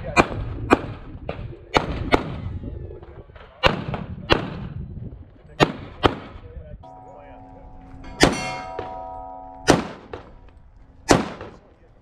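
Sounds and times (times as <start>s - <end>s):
steel targets ringing: 6.8s - 11.4s
pistol shots: 9.7s - 10.4s, 11.0s - 11.6s.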